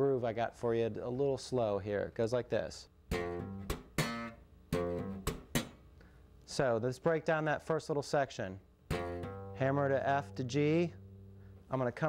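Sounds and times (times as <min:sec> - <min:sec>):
bass guitar funk groove: 0:03.1 - 0:05.7.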